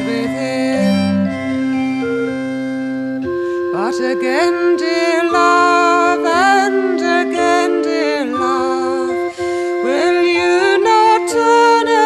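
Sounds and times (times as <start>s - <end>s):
sustained organ chords: 0.0s - 12.0s.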